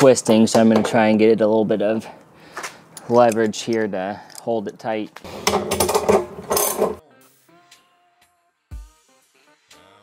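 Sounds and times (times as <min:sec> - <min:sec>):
socket ratchet clicking: 0:05.4 - 0:07.0.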